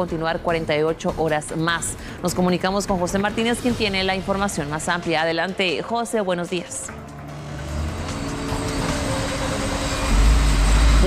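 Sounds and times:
low traffic hum: 1.6 - 11.0.

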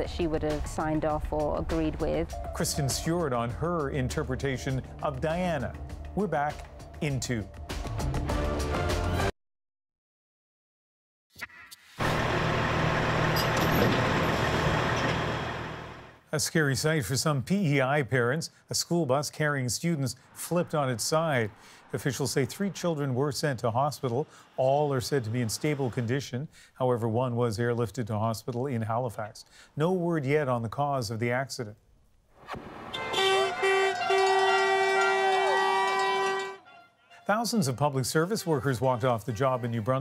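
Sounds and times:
diesel truck engines idling: 12.0 - 16.2
faint clinks: 13.3 - 14.0
horns honking: 32.6 - 40.0
plastic noisemaker horns: 32.9 - 40.0.

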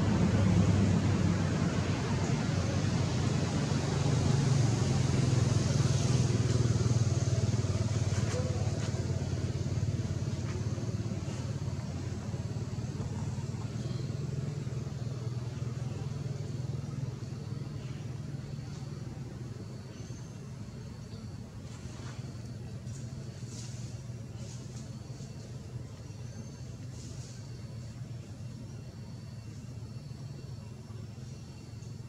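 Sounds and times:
vehicle engine hum: 0.0 - 32.0.

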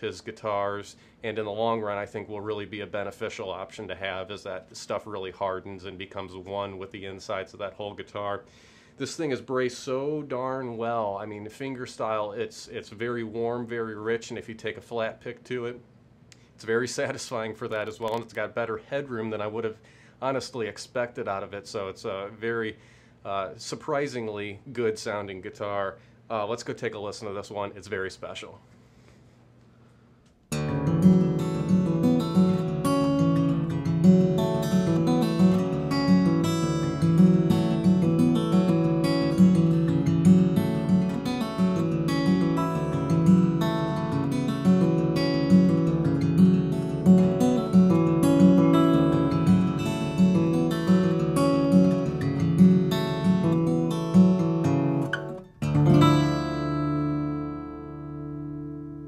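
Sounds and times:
fingerstyle acoustic guitar: 30.5 - 59.0.

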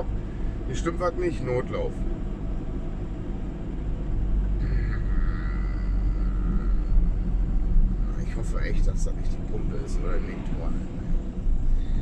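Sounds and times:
diesel van engine rumble: 0.0 - 12.0.

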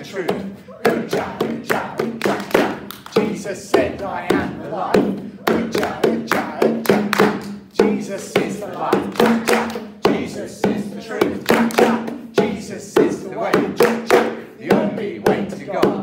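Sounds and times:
bongo drums beating a rhythm: 0.0 - 16.0
congregation singing a worship song: 0.0 - 16.0.

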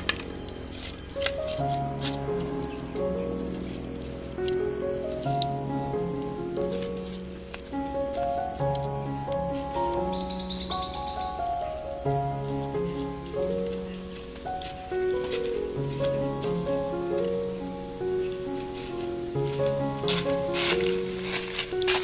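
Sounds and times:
chirping trill: 0.0 - 22.0
insects droning: 0.0 - 22.0
soft instrumental music: 0.0 - 22.0.

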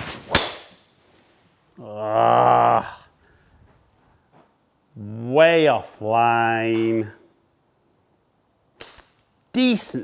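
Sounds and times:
golf club striking ball: 0.3 - 0.9.

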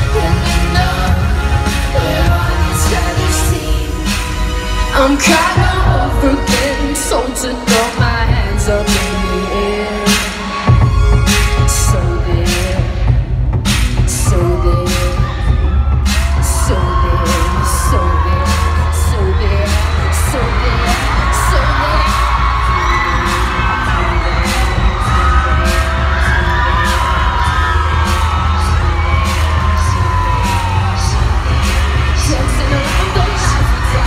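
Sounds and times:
steady drum beat: 0.0 - 4.5, 5.2 - 6.8, 10.1 - 34.0
deep bass: 0.0 - 7.1, 8.0 - 9.5, 10.7 - 34.0
singing voices: 0.0 - 34.0.

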